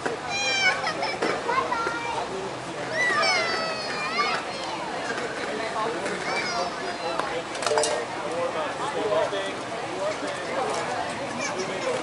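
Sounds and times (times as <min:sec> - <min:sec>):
players shouting and calling: 0:00.1 - 0:05.0, 0:05.6 - 0:07.2.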